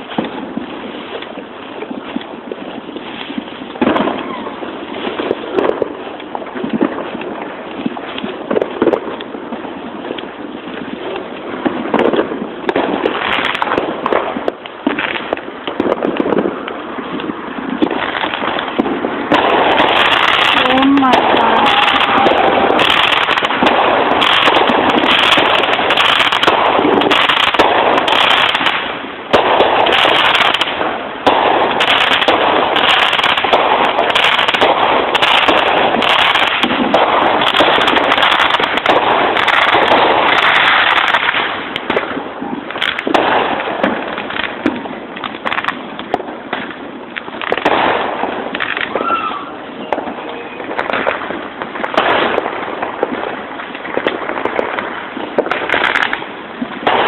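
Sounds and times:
fireworks bangs and crackling: 0:00.0 - 0:57.0.

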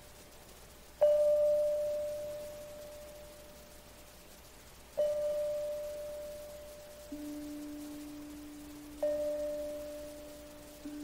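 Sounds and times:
bell-like note ringing: 0:01.0 - 0:03.6, 0:05.0 - 0:11.0.

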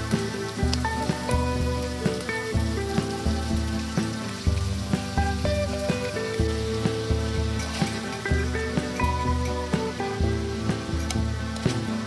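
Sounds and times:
background music: 0:00.0 - 0:12.0
shrimp sizzling in oil: 0:00.0 - 0:12.0.

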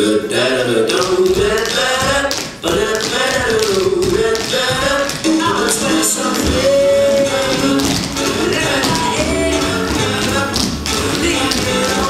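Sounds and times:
tap shoes on wooden stage: 0:00.9 - 0:12.0
recorded band music: 0:04.2 - 0:12.0.

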